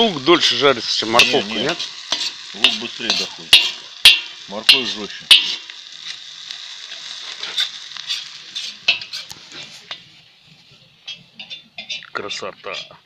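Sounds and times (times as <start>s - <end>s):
vegetables sizzling in oil: 0.0s - 13.0s
metal skimmer scraping a pot: 7.3s - 10.0s, 11.0s - 13.0s.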